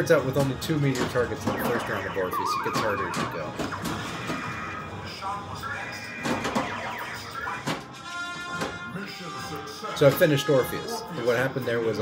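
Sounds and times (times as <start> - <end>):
pinball striking targets: 0.4 - 4.5, 6.2 - 7.9
warbling electronic game tones: 1.5 - 4.6
steady high electronic tone: 1.6 - 4.6.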